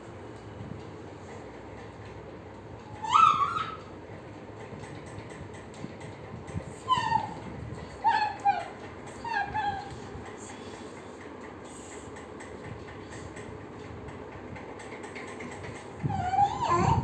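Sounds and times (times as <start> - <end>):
toddler squealing: 2.9 - 3.9, 6.8 - 7.4, 8.0 - 9.9, 16.1 - 17.0.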